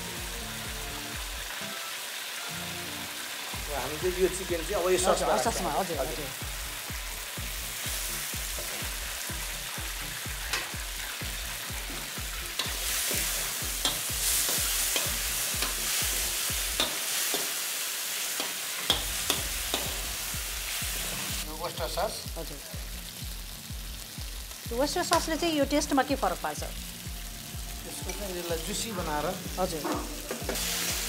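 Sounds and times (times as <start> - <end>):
chicken sizzling in a wok: 0.0 - 31.0.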